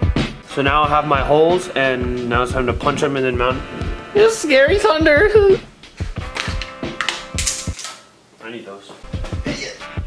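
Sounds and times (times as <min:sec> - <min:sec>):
background music: 0:00.0 - 0:08.0, 0:09.0 - 0:10.0.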